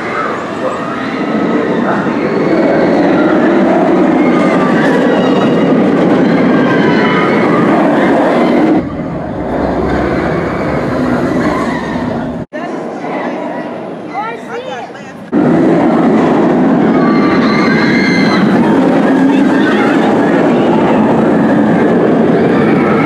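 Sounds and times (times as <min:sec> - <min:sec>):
roller coaster rumbling on track: 0:00.0 - 0:23.0.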